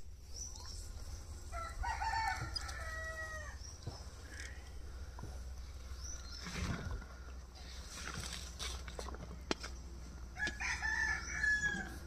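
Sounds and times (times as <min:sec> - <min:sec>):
rooster crowing: 0:01.5 - 0:03.6, 0:10.4 - 0:12.0.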